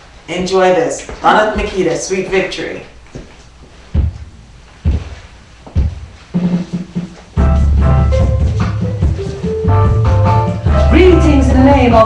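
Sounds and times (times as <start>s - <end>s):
bass drum beats: 4.0s - 12.0s
low bass notes: 7.4s - 12.0s.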